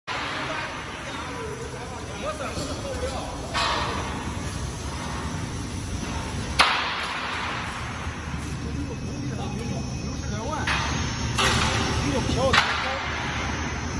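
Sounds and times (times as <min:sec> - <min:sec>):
steady low hum: 0:00.1 - 0:13.9.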